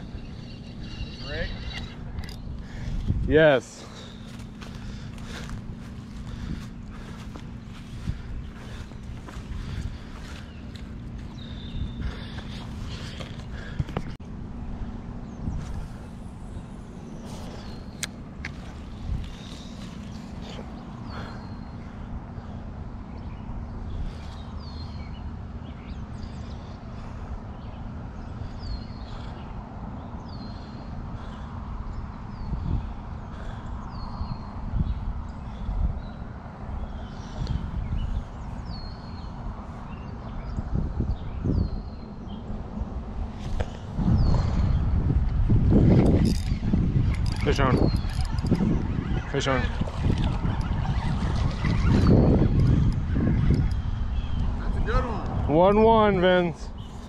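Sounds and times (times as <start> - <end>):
bird calling: 0.0 - 14.2, 15.6 - 22.6, 46.0 - 55.7
wind rumble on microphone: 0.0 - 57.0.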